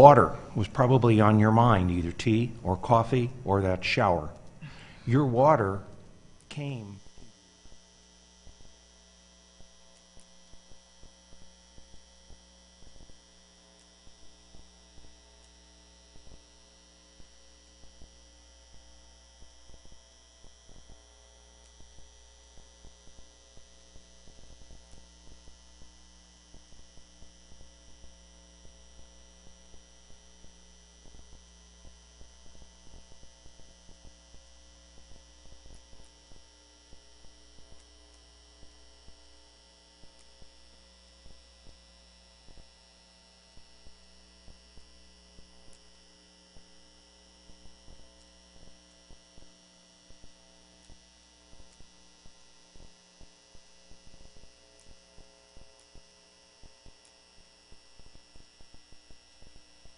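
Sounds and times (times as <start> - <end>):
electrical mains hum: 0.0 - 59.9.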